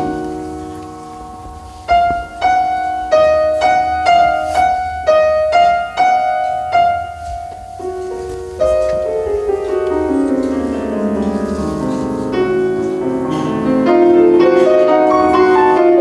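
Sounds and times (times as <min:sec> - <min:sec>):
grand piano playing: 0:00.0 - 0:16.0.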